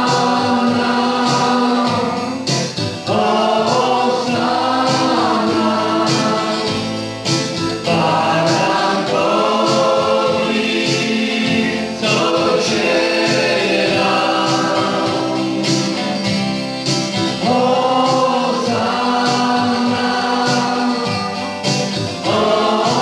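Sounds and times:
instrumental backing with steady beat: 0.0s - 23.0s
voices singing worship song: 0.0s - 23.0s.

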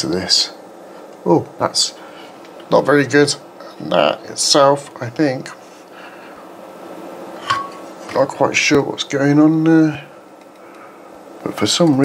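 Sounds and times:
cooling fan noise: 0.0s - 12.0s.

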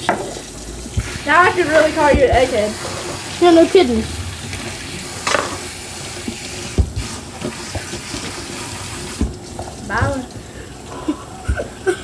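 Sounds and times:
faucet water splashing in sink: 0.0s - 12.0s.

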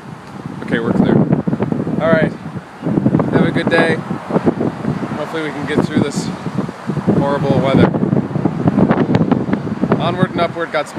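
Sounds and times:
gusty wind on microphone: 0.0s - 10.9s.

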